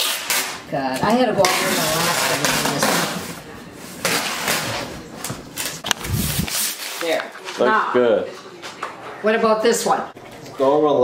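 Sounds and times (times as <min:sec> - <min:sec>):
packing tape pulled off roll: 0:00.0 - 0:00.6.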